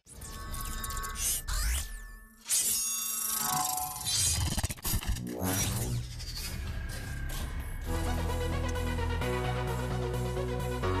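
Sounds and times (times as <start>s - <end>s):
electronic intro music: 5.2s - 11.0s.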